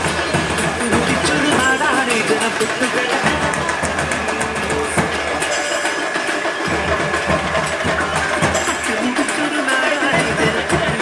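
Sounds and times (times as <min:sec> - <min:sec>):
loud music: 0:00.0 - 0:11.0.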